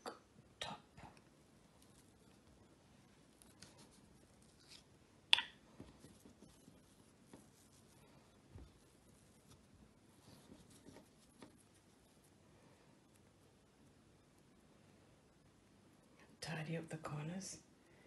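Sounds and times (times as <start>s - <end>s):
dough being peeled away: 1.7s - 5.0s, 5.8s - 12.4s.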